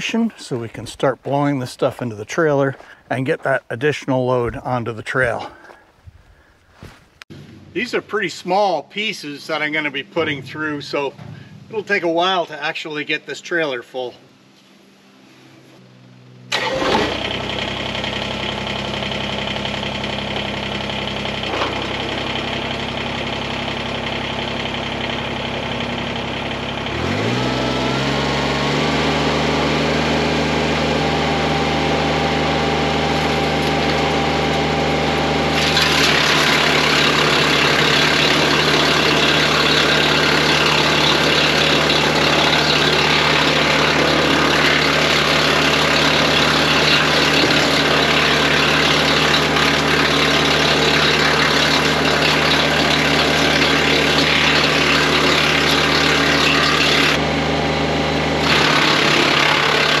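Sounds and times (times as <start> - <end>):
tractor diesel engine running: 0.0 - 12.4, 15.6 - 60.0
wood chipper chipping branches: 16.5 - 60.0
wood chipper spinning up: 16.5 - 60.0.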